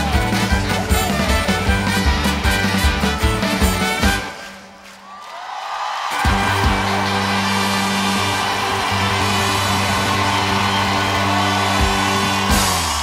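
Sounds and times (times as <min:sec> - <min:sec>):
live band holding chord: 0:06.2 - 0:13.0.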